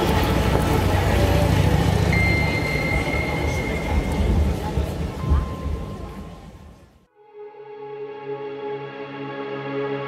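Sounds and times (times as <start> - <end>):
steady high tone: 1.9 - 10.0.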